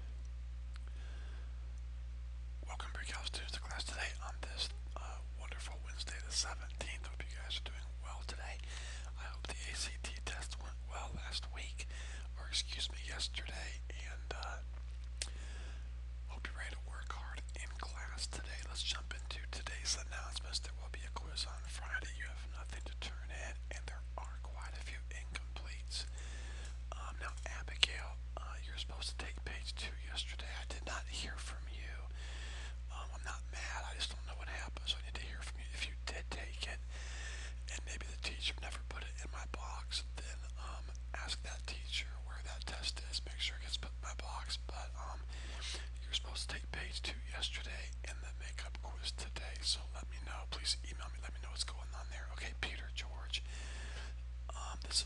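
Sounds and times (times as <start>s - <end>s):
low hum: 0.0s - 55.0s
people whispering and talking: 2.6s - 14.7s.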